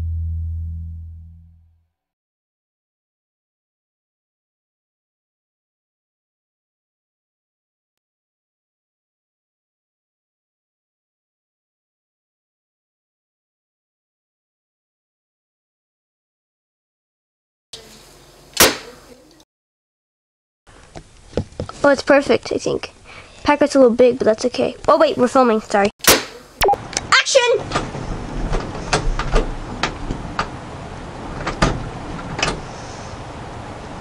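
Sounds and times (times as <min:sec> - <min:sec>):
sharp knock: 0:18.6 - 0:18.9, 0:26.0 - 0:26.4.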